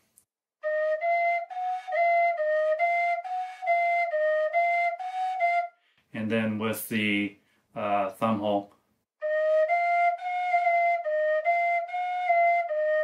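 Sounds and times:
tin whistle notes: 0:00.6 - 0:05.8, 0:09.2 - 0:13.0.

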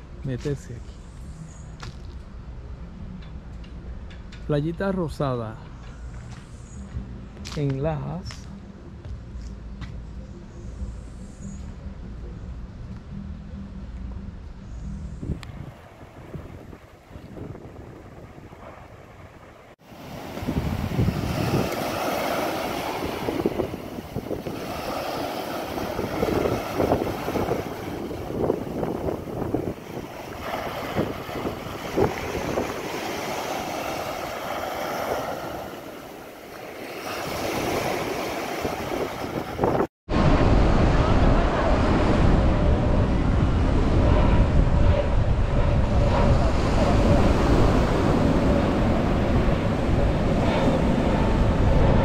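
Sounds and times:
steady low rumble: 0:00.0 - 0:34.8, 0:40.1 - 0:52.0
small waves breaking on sand: 0:15.8 - 0:40.6.

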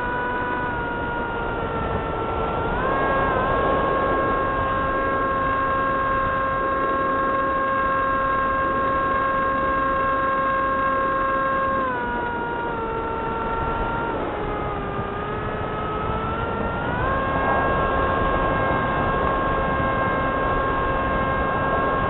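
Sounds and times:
model airplane motor whining: 0:00.0 - 0:22.0.

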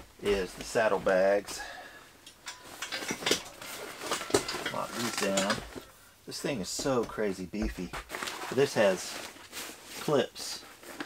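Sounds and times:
clips clicking on metal rack: 0:02.2 - 0:05.8
fabric bag rustling: 0:02.6 - 0:06.0, 0:07.8 - 0:11.0.

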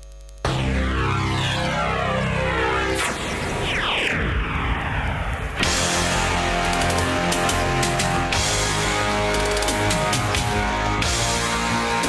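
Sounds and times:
music over loudspeakers: 0:05.6 - 0:12.0.

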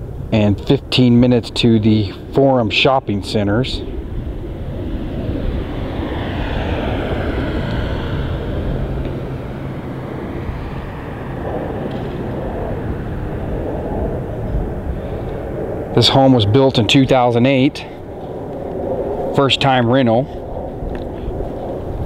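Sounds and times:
aircraft engine rushing overhead: 0:00.0 - 0:22.0
low hum: 0:00.0 - 0:22.0.

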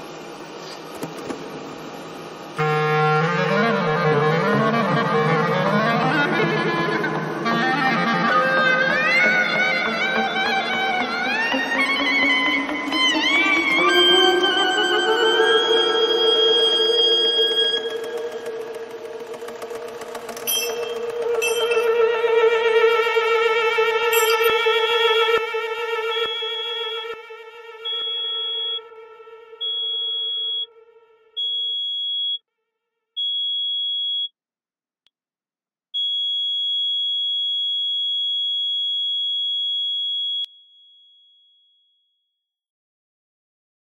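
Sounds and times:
clarinet and saxophone chamber music: 0:02.6 - 0:29.0
high electronic tone: 0:02.6 - 0:31.7
rapid run of clicks: 0:16.8 - 0:22.0.

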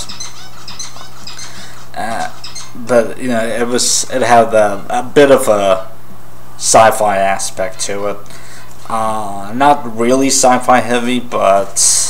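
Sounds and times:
small birds chirping: 0:00.0 - 0:03.6
steady low hum: 0:00.0 - 0:12.0.

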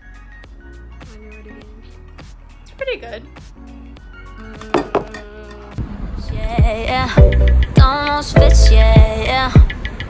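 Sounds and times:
pop song with sustained notes: 0:06.4 - 0:09.8.

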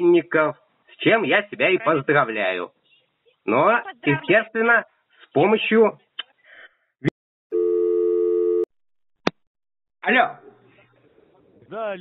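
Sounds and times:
steady telephone beep: 0:07.6 - 0:08.7.

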